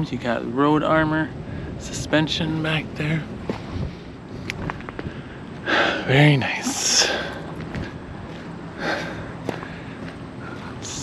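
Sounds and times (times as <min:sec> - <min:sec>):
low outdoor background noise: 0:00.0 - 0:11.0.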